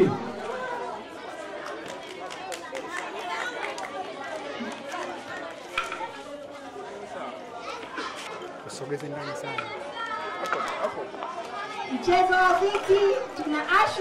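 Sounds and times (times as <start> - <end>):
crowd chatter: 0.0 - 14.0.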